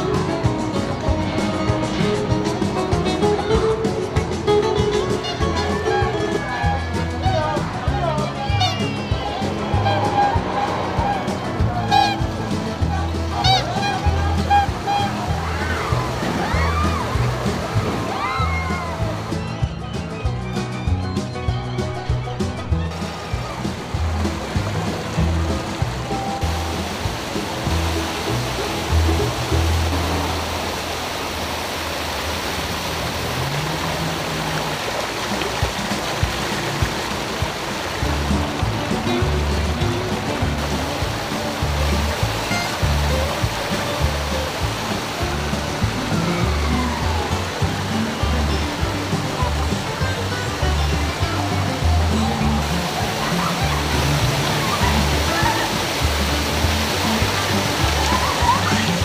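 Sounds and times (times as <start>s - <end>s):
waterfall splashing onto rocks: 0.0s - 19.3s, 22.9s - 59.0s
music with bass line: 0.0s - 30.7s, 35.2s - 59.0s.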